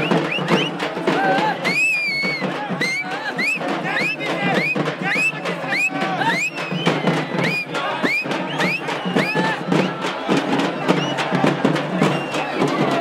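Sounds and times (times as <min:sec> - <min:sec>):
crowd cheering and shouting: 0:00.0 - 0:13.0
fast steady drumbeat: 0:00.0 - 0:13.0.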